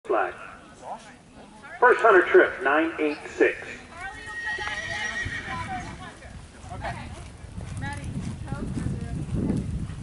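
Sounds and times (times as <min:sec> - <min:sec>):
hoofbeats trotting on sand: 0:03.9 - 0:10.0
horse whinnying: 0:04.2 - 0:05.7.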